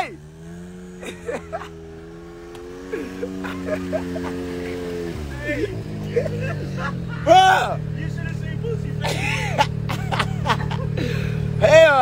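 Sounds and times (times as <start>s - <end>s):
distant voices: 0.0s - 12.0s
vehicle engine running: 0.0s - 12.0s.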